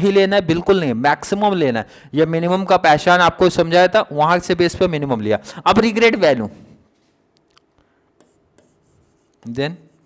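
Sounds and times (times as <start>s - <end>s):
pen scratching on whiteboard screen: 8.2s - 10.0s.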